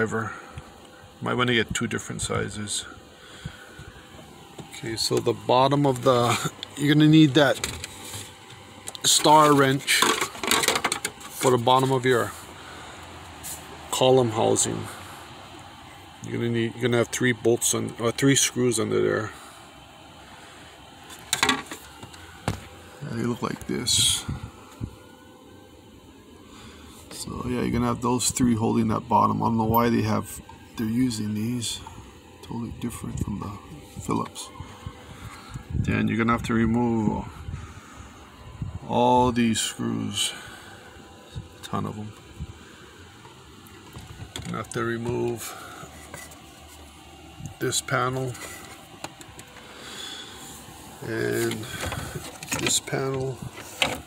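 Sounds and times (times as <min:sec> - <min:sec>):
steady low hiss: 0:00.0 - 0:54.0.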